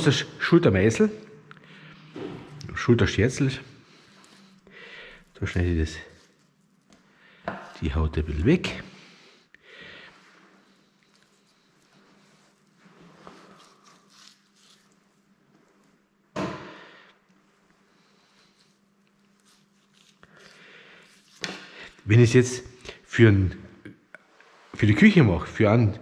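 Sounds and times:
knife trimming meat on board: 19.3 - 21.7.

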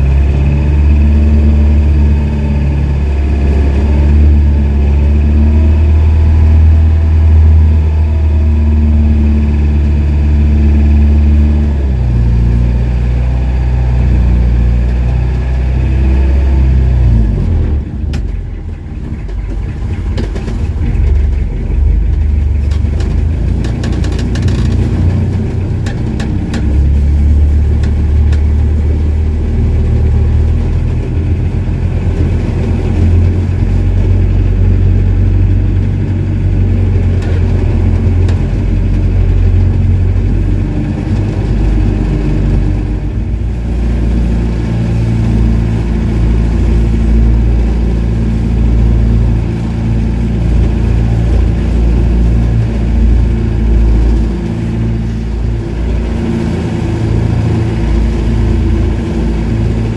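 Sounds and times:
boat engine running: 0.0 - 59.9.

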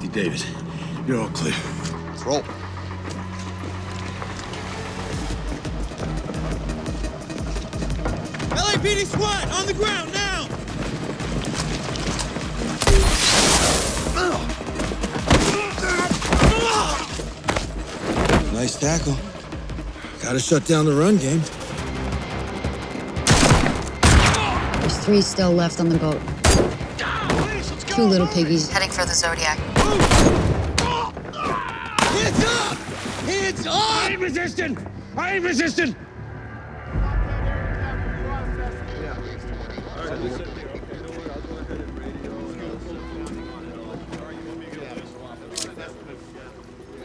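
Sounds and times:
low rumble: 36.0 - 41.0
people chattering: 39.0 - 47.0.

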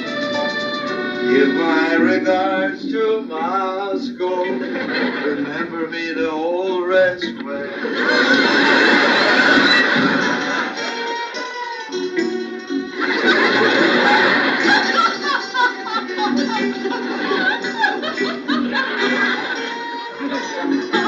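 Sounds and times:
television music score: 0.0 - 21.0
woman sobbing and crying: 13.1 - 21.0.

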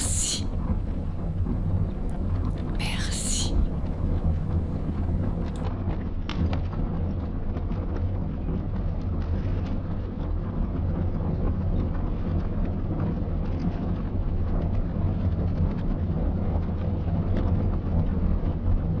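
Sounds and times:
low rumble: 0.0 - 5.6.

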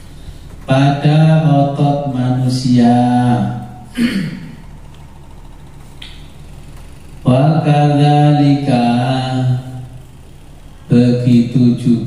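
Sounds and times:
man chanting melodic recitation: 0.7 - 3.9, 7.2 - 10.0, 10.9 - 12.0.

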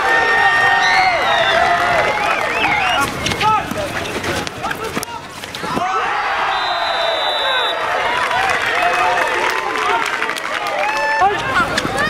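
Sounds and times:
people shouting calls: 0.0 - 12.0.

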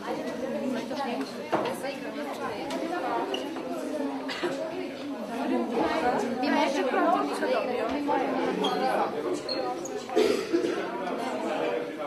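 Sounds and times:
crowd of women chattering: 0.0 - 12.0.

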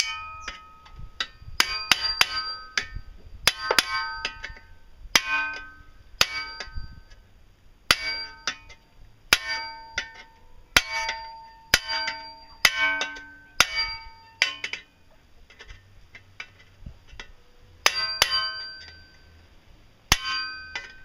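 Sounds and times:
hammer striking steel chisel: 0.0 - 6.8, 7.9 - 14.9, 17.2 - 19.2, 20.1 - 21.0.

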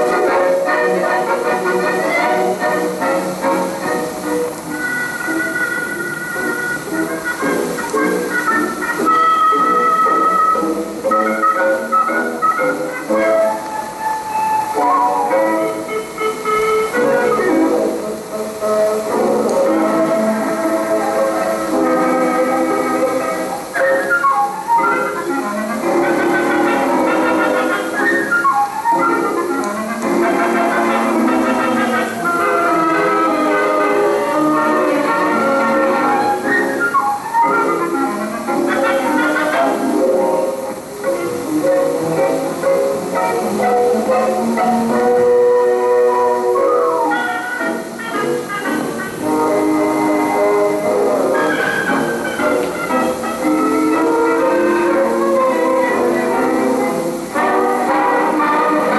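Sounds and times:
orchestral film music: 0.0 - 58.9.

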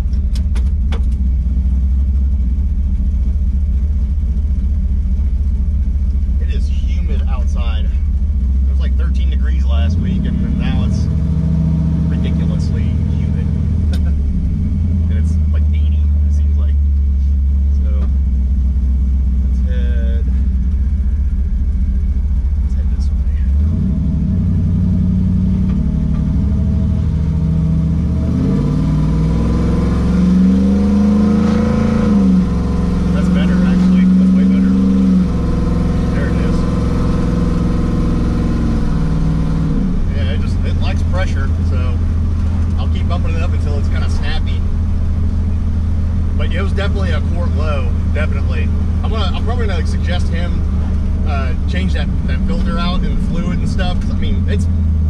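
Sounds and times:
truck engine while driving: 0.0 - 55.0.

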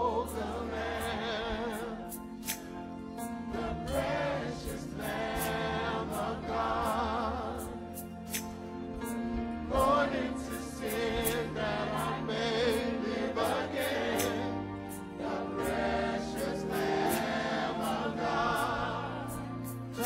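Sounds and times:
gospel choir singing: 0.0 - 20.0
instrumental accompaniment: 0.0 - 20.0.

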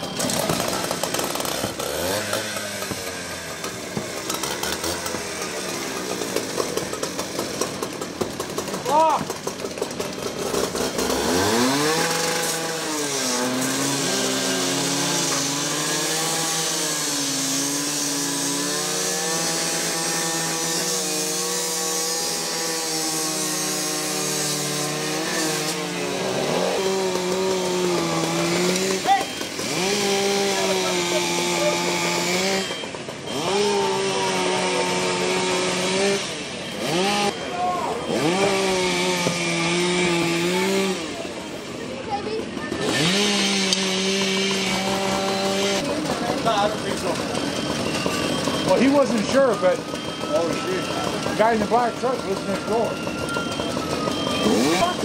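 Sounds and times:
gas-powered saw revving: 0.0 - 55.0.

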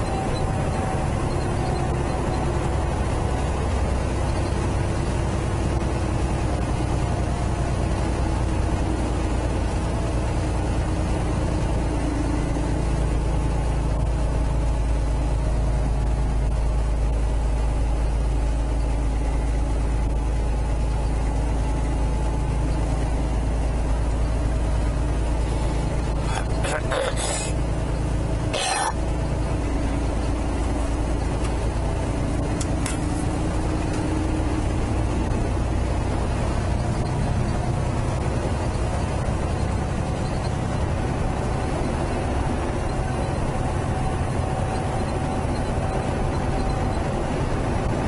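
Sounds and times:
diesel truck engine drone: 0.0 - 48.0
road noise: 0.0 - 48.0.

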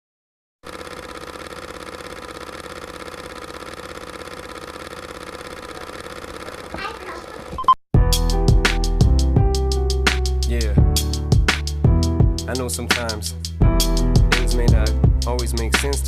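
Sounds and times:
film projector clattering: 0.6 - 7.6
short beep: 7.6 - 7.8.

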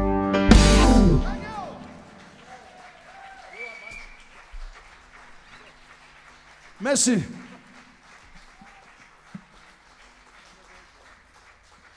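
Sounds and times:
distant scattered clapping: 1.7 - 11.9.

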